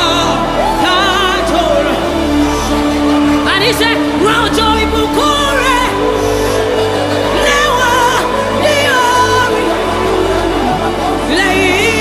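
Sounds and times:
woman singing gospel song: 0:00.0 - 0:02.4, 0:03.4 - 0:12.0.

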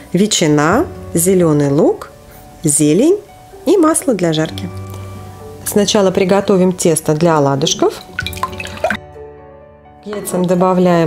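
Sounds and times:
background music sustained notes: 0:00.0 - 0:11.0.

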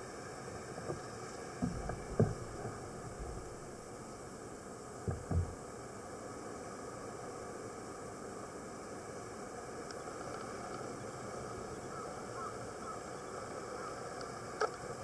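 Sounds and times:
surf washing onto rocky shore: 0:00.9 - 0:05.7.

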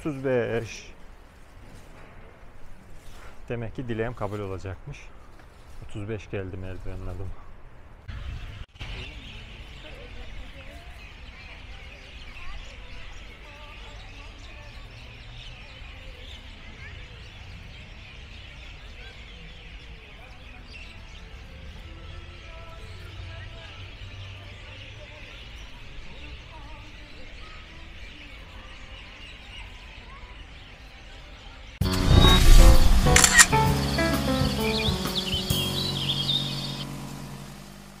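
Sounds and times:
small birds chirping: 0:02.9 - 0:38.0
music jingle with sound effects: 0:31.8 - 0:38.0.

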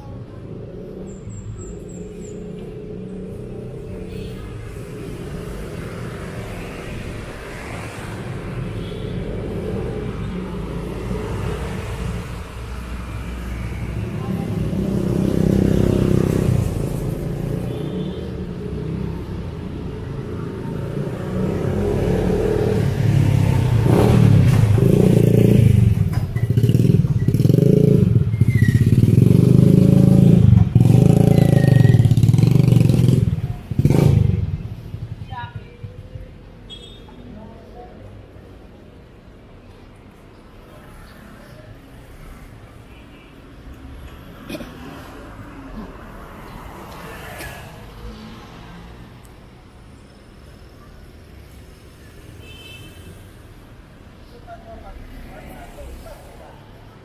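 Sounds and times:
motorcycles: 0:00.0 - 0:57.0.

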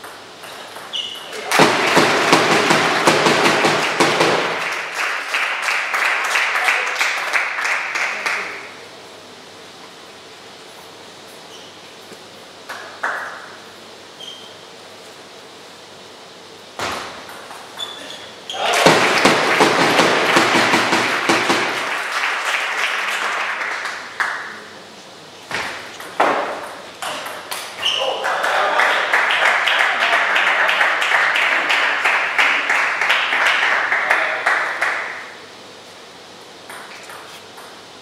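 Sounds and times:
table tennis ball rally: 0:00.0 - 0:05.2, 0:16.8 - 0:22.4, 0:25.5 - 0:35.4
crowd noise in a large hall: 0:00.9 - 0:09.8, 0:17.9 - 0:25.5, 0:26.8 - 0:36.0
applause: 0:01.4 - 0:08.7, 0:12.7 - 0:13.4, 0:18.6 - 0:24.7, 0:28.1 - 0:35.4.

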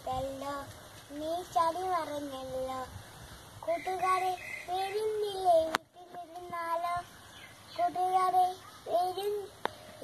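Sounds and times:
boy singing unaccompanied: 0:00.0 - 0:03.0, 0:03.6 - 0:10.0.

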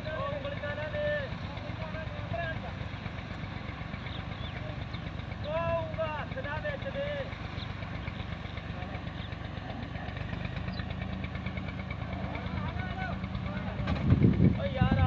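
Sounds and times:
thresher engine droning: 0:00.0 - 0:15.0.

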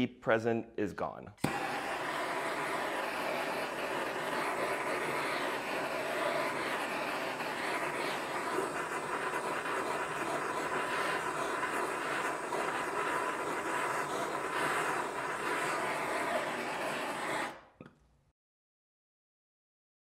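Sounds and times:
propane torch hissing flame: 0:01.4 - 0:17.8.

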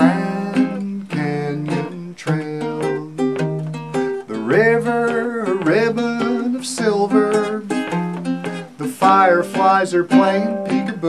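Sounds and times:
ukulele picking: 0:00.0 - 0:11.0.

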